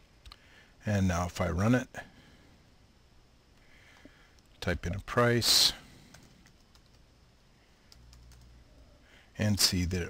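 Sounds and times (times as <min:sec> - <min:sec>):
faint computer keystrokes: 0:03.9 - 0:05.1, 0:06.1 - 0:07.0, 0:07.9 - 0:08.5.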